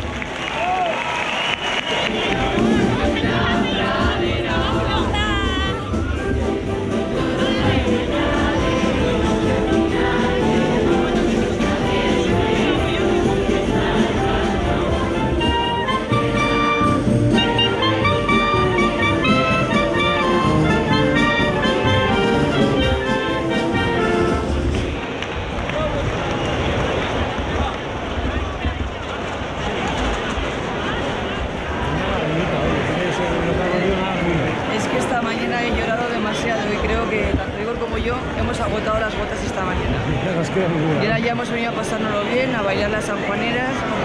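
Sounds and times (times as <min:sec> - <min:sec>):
crowd voices: 0:00.0 - 0:44.0
brass band playing: 0:02.0 - 0:25.0.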